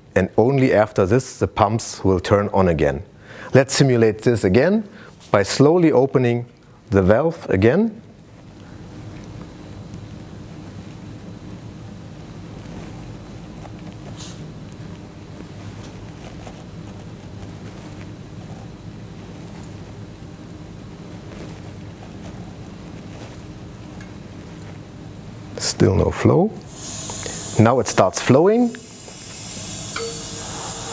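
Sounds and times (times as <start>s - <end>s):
mechanical hum with hiss: 0.0s - 30.9s.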